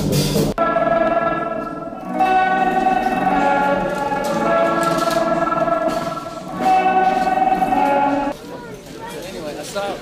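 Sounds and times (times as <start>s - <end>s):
electric guitar ringing notes: 0.6s - 8.4s.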